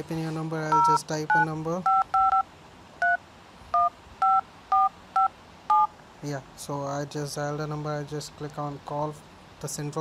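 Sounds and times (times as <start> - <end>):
keypad dialing beeps: 0.7 - 5.9.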